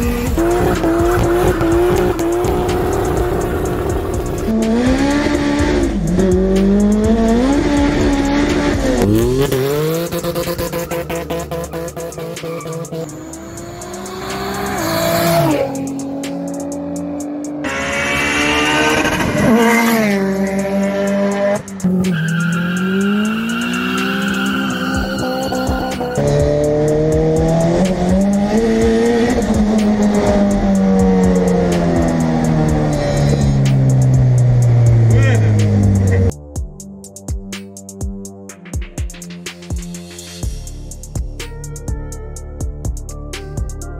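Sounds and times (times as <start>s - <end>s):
car engines revving: 0.0s - 36.3s
tyres squealing: 22.0s - 26.4s.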